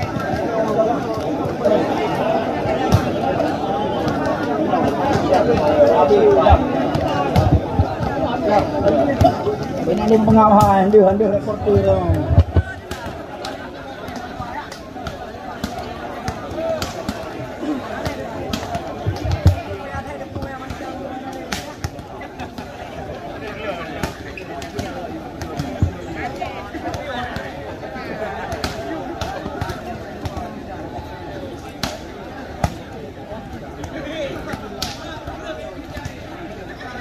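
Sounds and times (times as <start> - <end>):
crowd chatter: 0.0 - 37.0.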